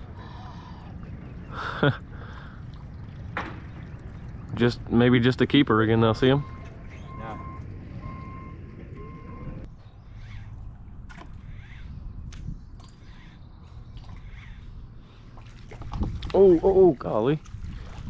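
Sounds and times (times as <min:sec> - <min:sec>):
water: 0:00.0 - 0:09.4, 0:10.1 - 0:18.0
wind: 0:00.0 - 0:18.0
bird chirps: 0:06.4 - 0:08.5, 0:09.7 - 0:10.8.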